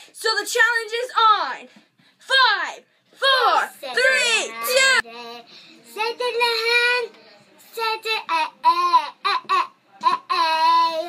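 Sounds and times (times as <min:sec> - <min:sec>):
boy singing wordless syllables: 0:07.7 - 0:11.0.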